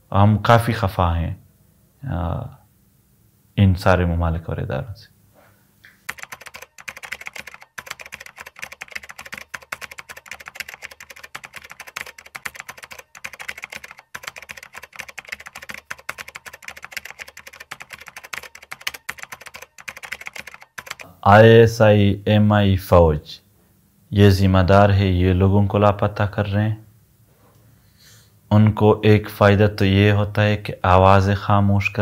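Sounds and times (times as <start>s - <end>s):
keyboard typing clicks: 6.1s - 21.1s.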